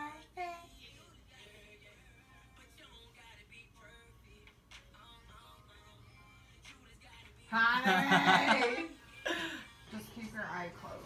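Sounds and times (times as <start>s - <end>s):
faint music with singing: 0.0s - 11.0s.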